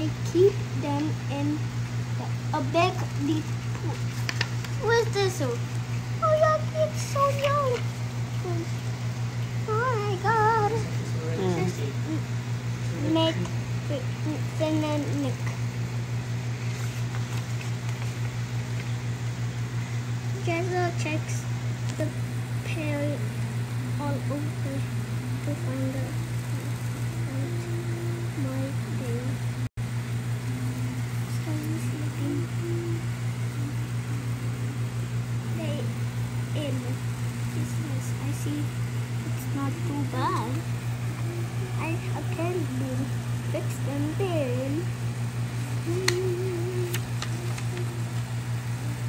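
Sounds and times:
low machine hum: 0.0 - 49.0
paper page rustling: 3.0 - 4.8, 16.6 - 18.9, 46.1 - 48.2
soft voices murmuring: 9.6 - 15.6, 36.6 - 45.0, 45.6 - 49.0.

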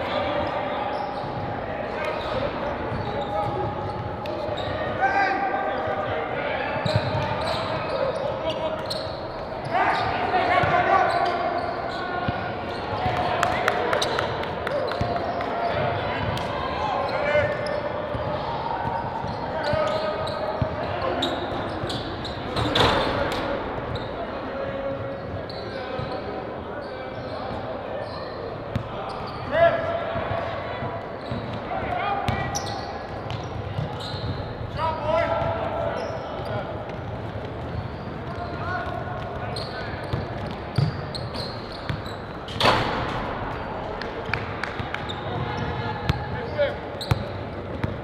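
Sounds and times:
players shouting in a hall: 0.0 - 36.9
basketballs bouncing on wooden floor: 47.0 - 48.0.

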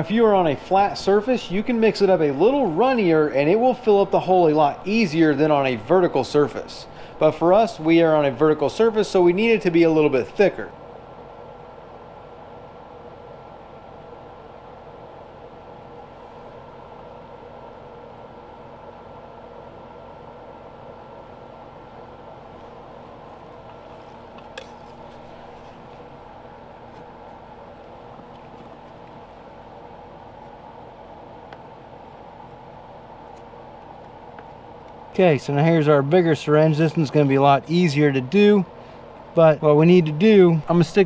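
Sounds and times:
low background hum: 0.0 - 41.0.

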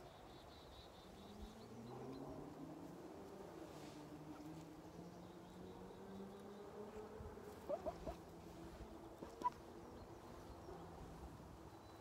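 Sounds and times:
hen chirping softly: 7.7 - 8.2.

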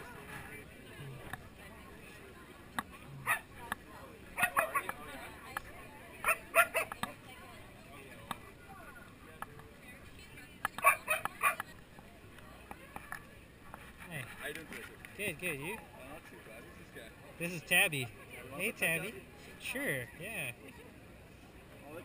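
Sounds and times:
crowd chatter: 0.0 - 22.0
dog barking: 3.2 - 3.5, 4.4 - 4.9, 6.2 - 7.0, 10.8 - 11.6.

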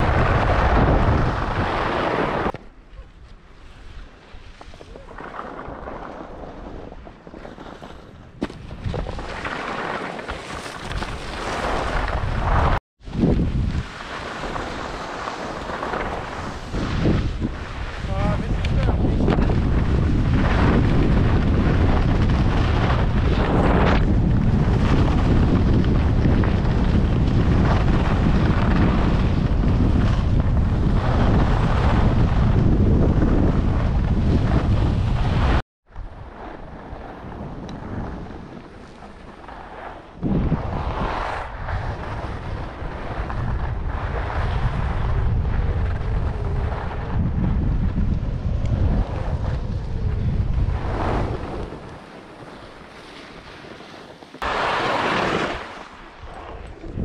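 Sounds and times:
wind rushing over microphone: 0.0 - 2.6, 10.7 - 57.0.

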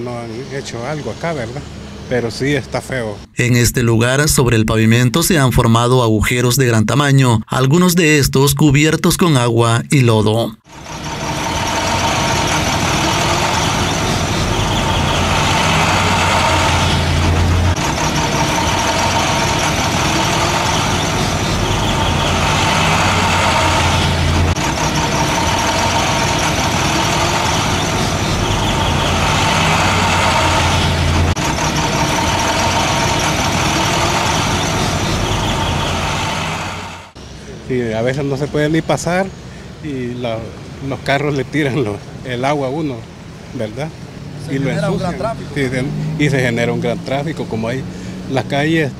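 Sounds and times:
street traffic engines: 0.0 - 5.7, 10.2 - 48.9.

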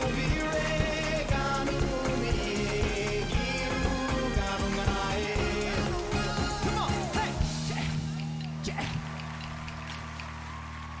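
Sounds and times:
crowd applause and cheering: 0.0 - 11.0.

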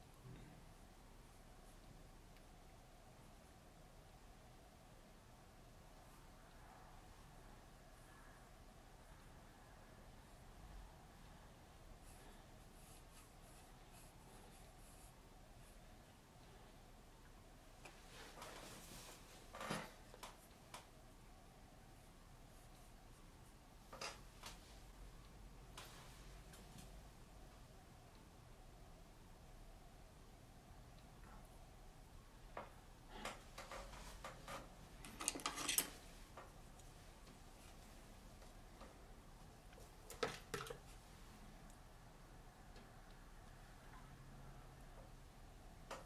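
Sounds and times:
soft rustle: 17.7 - 20.9, 21.8 - 27.6, 33.1 - 40.2.

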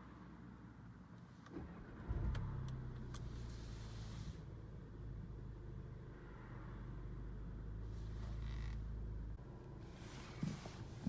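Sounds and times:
car engine starting and idling: 1.2 - 6.2.

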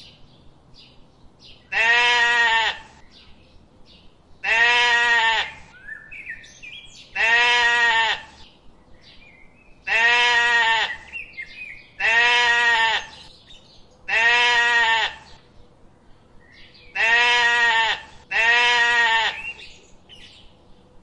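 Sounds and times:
small birds chirping: 0.0 - 21.0
goat bleating: 1.7 - 3.0, 4.4 - 5.7, 7.2 - 8.4, 9.9 - 11.1, 12.0 - 13.2, 14.1 - 15.4, 16.9 - 19.6.

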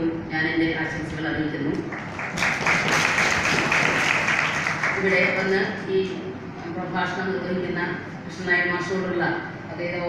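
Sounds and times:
audience applause: 2.0 - 5.5.

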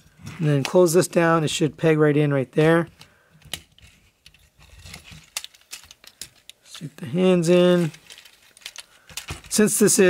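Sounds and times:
plastic toy parts clicking and rubbing: 3.0 - 10.0.

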